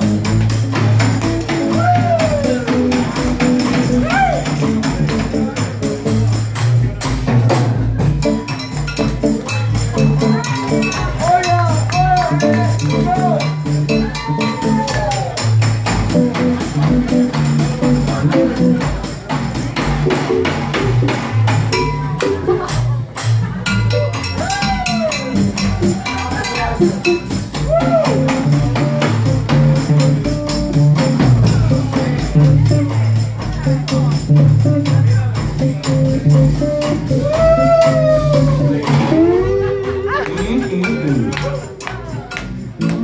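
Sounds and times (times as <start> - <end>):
bass line: 0.0 - 43.0
hand drums and percussion: 0.0 - 43.0
live blues band playing: 0.0 - 43.0
lead instrument bending notes: 8.0 - 15.1, 19.8 - 33.0, 34.3 - 43.0
percussion clicks: 40.3 - 43.0.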